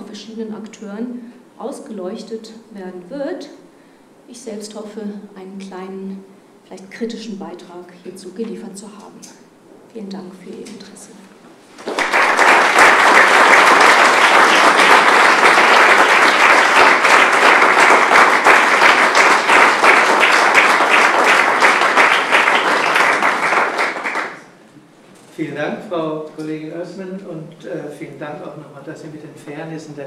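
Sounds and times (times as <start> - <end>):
audience applauding: 11.7 - 24.6.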